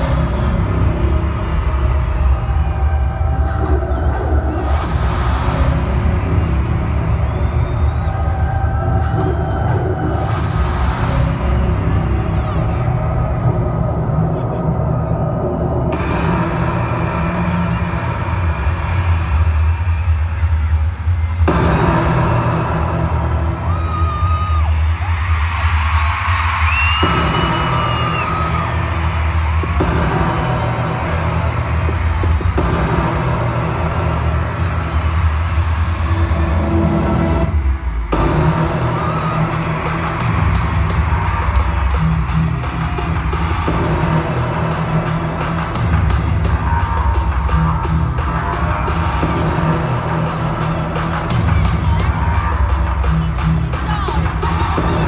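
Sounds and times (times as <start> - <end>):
crowd cheering and whooping: 0.0 - 55.0
loud pop music with heavy bass: 0.0 - 55.0.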